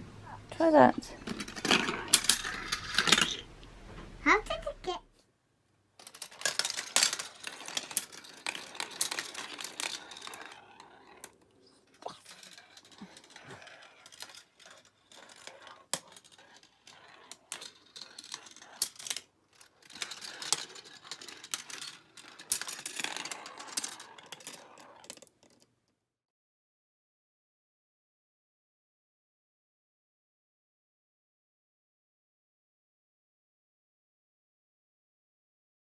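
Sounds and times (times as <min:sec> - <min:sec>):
steel marbles clicking on rails: 0:01.2 - 0:03.4, 0:06.0 - 0:25.7
plastic track pieces handled: 0:01.2 - 0:03.5, 0:06.0 - 0:25.8.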